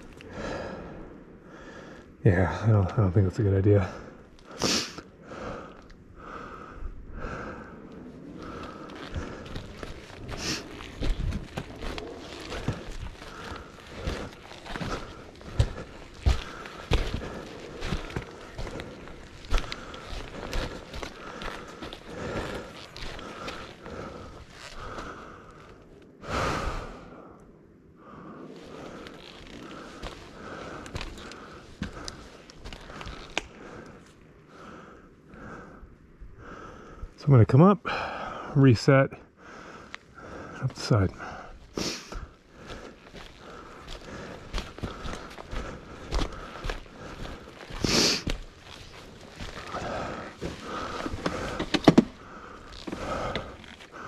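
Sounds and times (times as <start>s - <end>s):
heavy breathing: 0.0s - 2.8s, 3.7s - 37.2s, 37.8s - 38.6s, 39.2s - 54.0s
footsteps on rocky trail: 8.2s - 25.8s, 28.6s - 34.2s, 39.8s - 54.0s.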